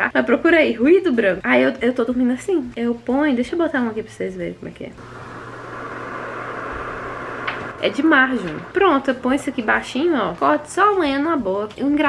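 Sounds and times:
white noise hiss: 5.0 - 11.3.

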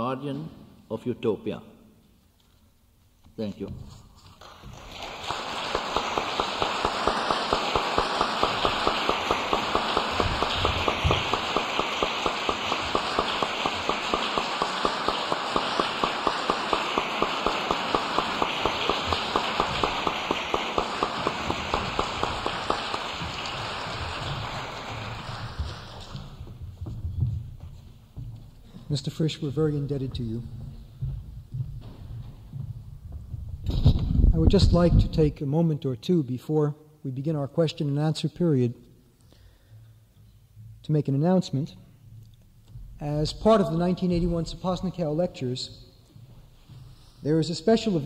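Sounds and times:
audience applauding: 4.4 - 26.4.

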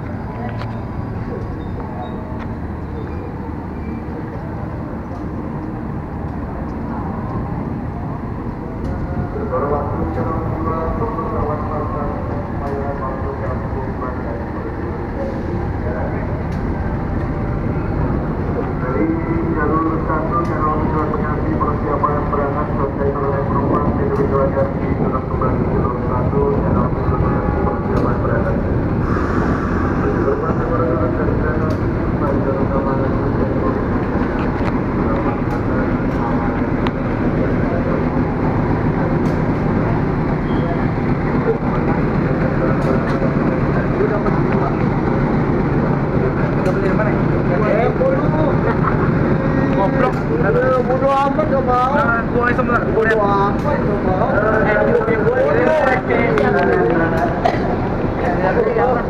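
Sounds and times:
diesel locomotive engine running: 0.0 - 59.0
people talking: 0.0 - 59.0.

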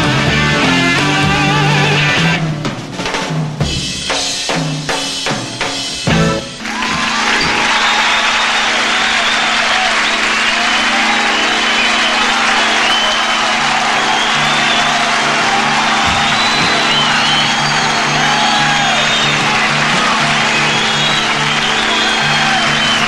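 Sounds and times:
audience applauding and cheering: 6.4 - 23.0
shrill whistles: 6.7 - 23.0.

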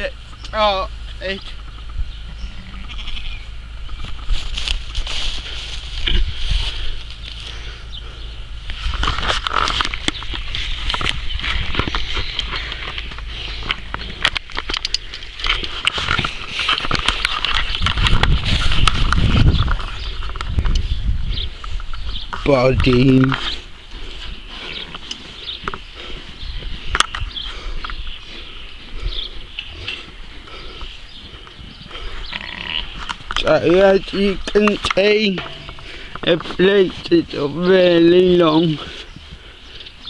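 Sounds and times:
sheep bleating: 2.3 - 3.6, 32.3 - 33.0
camera handling noise: 8.8 - 20.9.

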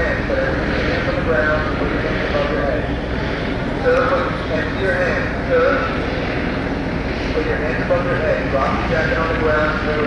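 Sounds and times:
loud steady rushing noise: 0.0 - 10.0.

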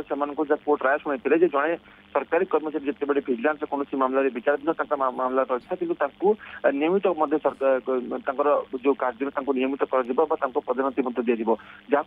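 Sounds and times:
man talking over phone line: 0.0 - 12.0.

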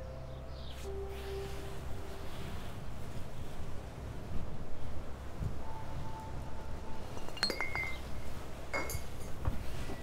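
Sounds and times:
low outdoor rumble: 1.4 - 10.0
glass bottle clinking: 7.2 - 8.0, 8.7 - 9.3.

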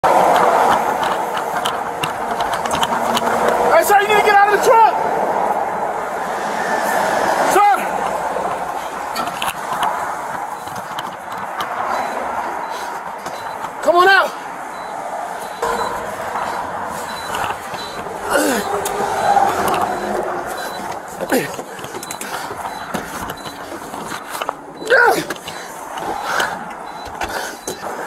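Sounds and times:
scattered knocks and clicks: 0.0 - 28.0
steady rushing noise: 0.0 - 28.0
man shouting: 3.7 - 5.0, 7.5 - 7.9, 13.8 - 14.4, 24.8 - 25.3.

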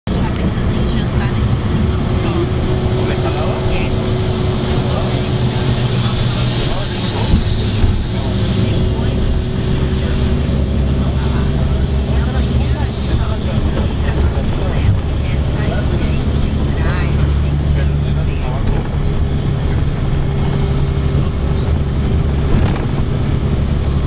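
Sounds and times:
engine and tyre rumble: 0.0 - 24.0
constant hum: 0.1 - 24.0.

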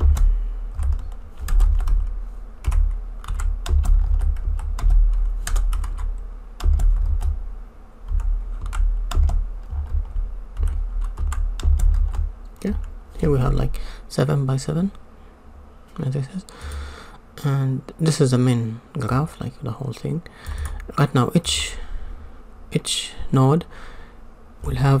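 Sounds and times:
typing on computer keyboard: 0.0 - 7.4, 8.1 - 12.9.

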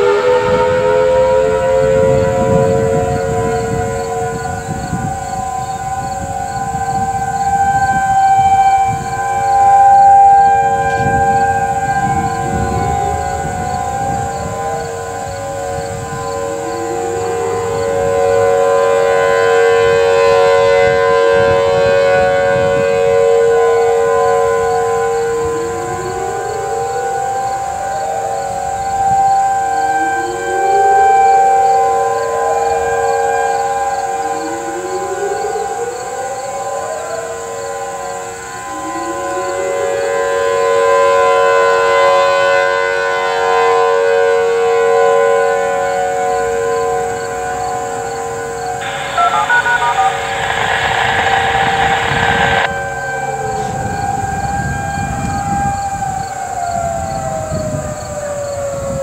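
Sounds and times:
distant warning sirens: 0.0 - 59.0.

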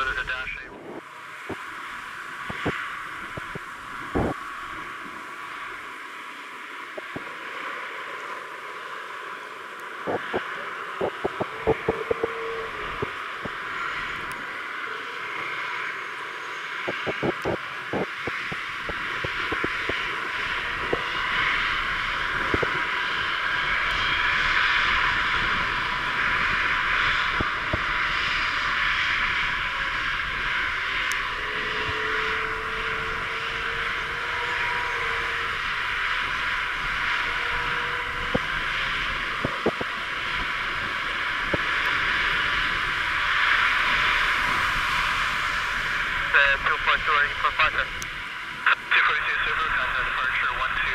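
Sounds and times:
jet engine roar: 0.0 - 50.9.

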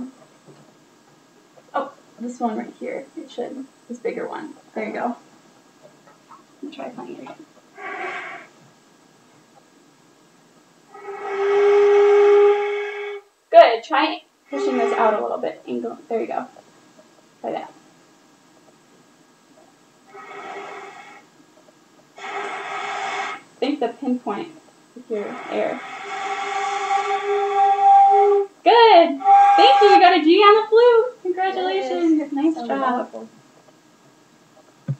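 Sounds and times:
breath noise: 7.7 - 8.6, 20.1 - 21.4, 22.2 - 23.6, 25.1 - 28.5, 29.2 - 30.1
flute holding steady note: 10.9 - 13.3, 14.5 - 15.4, 22.2 - 23.4, 25.1 - 30.6.

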